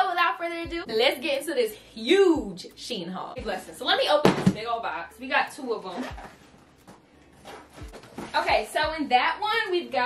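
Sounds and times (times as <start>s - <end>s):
cardboard box rustling: 7.3s - 8.5s.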